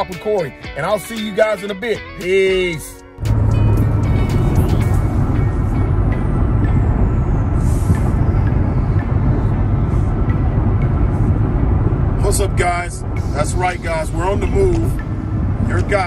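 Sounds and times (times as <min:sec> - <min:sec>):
car road and engine noise: 0:00.0 - 0:16.0
music playing: 0:00.0 - 0:16.0.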